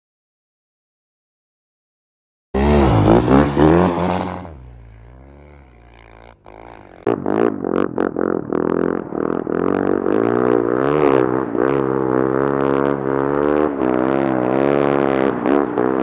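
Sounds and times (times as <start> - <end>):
engine crackles: 2.6 - 10.7
motorbike engine revving: 2.6 - 16.0.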